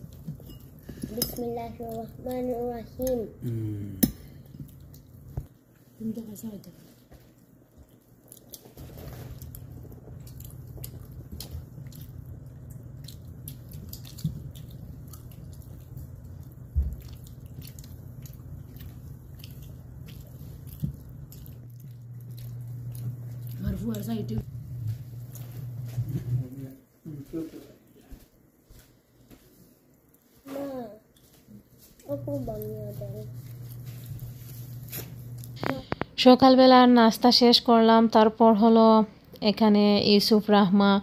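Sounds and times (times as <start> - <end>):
low hum: 9.4 - 26.6.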